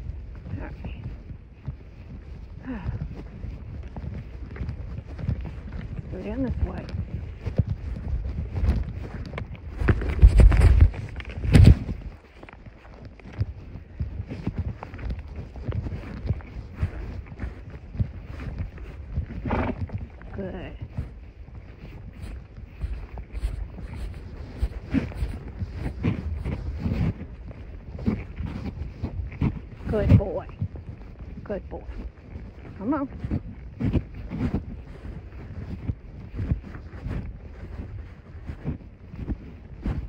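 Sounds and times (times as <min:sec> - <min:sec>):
microphone rubbing against clothing: 0:00.0 - 0:40.0
wind buffeting: 0:00.0 - 0:40.0
rustles and knocks: 0:07.6 - 0:13.6.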